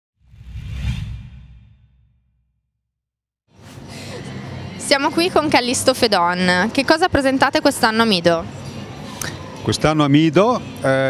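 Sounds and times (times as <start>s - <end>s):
whoosh sound effect: 0.2s - 2.5s
deep rumble: 0.2s - 2.6s.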